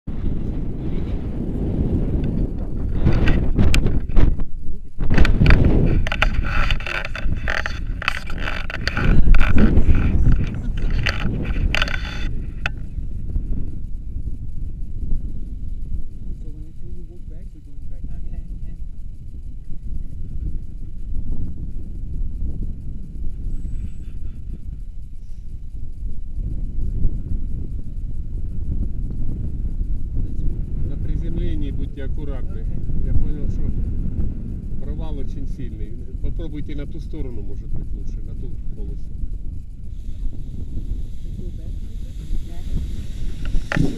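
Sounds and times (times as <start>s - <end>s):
wind buffeting microphone: 0.0s - 43.9s
indistinct voices: 4.8s - 12.8s
loud crackling and rustling: 5.0s - 12.7s, 40.0s - 43.9s.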